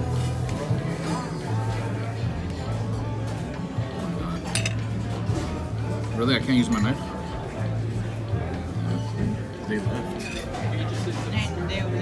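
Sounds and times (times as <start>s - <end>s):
fork clinking on plate: 4.5s - 4.8s.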